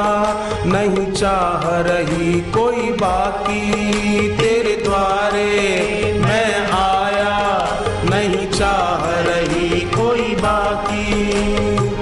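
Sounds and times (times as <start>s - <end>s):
hand drum beat: 0.0s - 12.0s
person singing devotional song: 0.0s - 12.0s.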